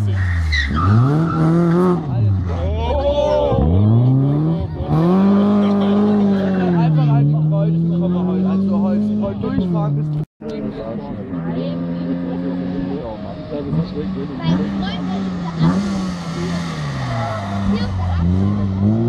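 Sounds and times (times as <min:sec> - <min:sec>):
rally car engine approaching: 0:00.0 - 0:19.0
rally car engine accelerating: 0:00.1 - 0:19.0.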